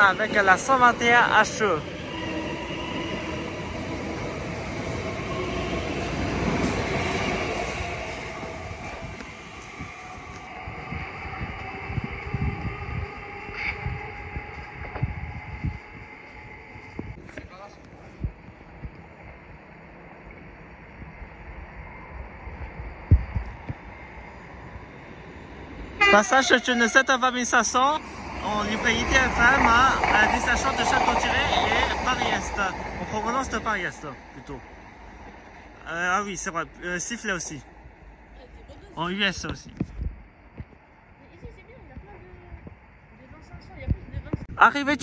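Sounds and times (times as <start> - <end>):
train wheels rumbling: 0.0 - 38.7
distant train approaching: 0.0 - 39.6.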